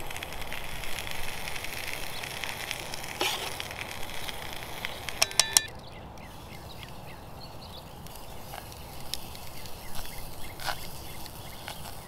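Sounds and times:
batter sizzling in a hot pan: 0:00.0 - 0:12.0
crackling wood fire: 0:00.0 - 0:12.0
sharp metallic clinks: 0:05.2 - 0:05.8.

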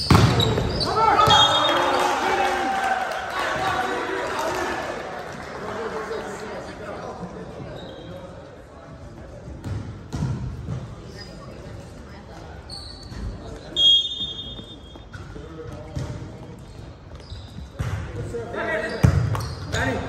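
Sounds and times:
sneakers squeaking: 0:00.0 - 0:02.1, 0:07.4 - 0:08.6, 0:09.2 - 0:20.0
low chatter of people: 0:05.6 - 0:20.0.

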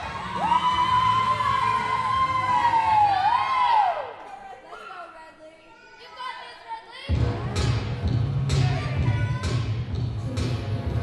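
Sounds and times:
audience whooping cheer: 0:00.0 - 0:04.2.

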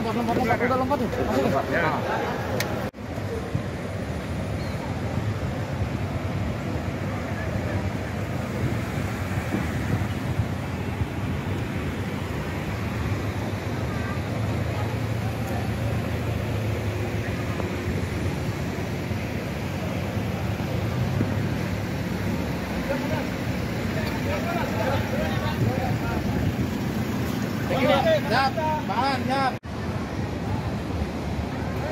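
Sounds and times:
car engines idling in traffic: 0:00.0 - 0:31.9.

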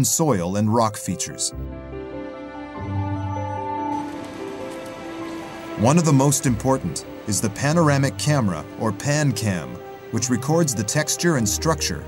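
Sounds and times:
man narrating: 0:00.0 - 0:01.6, 0:05.8 - 0:12.0
soft background music: 0:00.0 - 0:12.0
rain-like hiss: 0:04.0 - 0:11.6.

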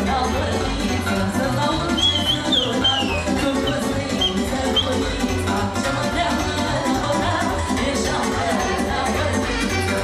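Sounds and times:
lively folk dance band music: 0:00.0 - 0:10.0.

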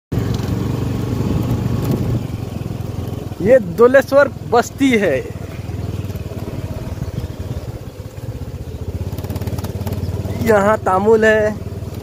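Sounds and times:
small engine running: 0:00.2 - 0:12.0.

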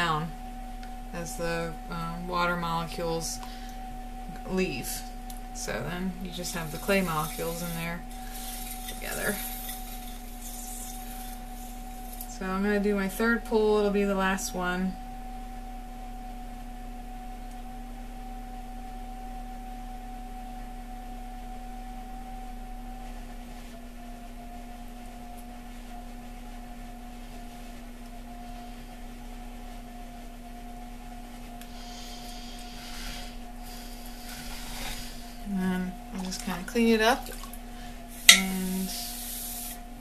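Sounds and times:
pottery wheel motor humming: 0:00.0 - 0:40.0.

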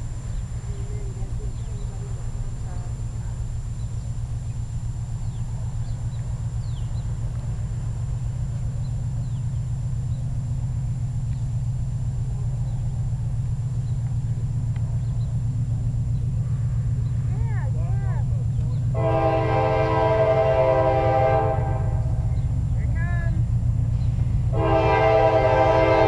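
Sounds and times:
diesel locomotive rumble: 0:00.0 - 0:26.0
faint bird chirps: 0:03.7 - 0:07.2, 0:08.7 - 0:10.4, 0:13.7 - 0:17.3.

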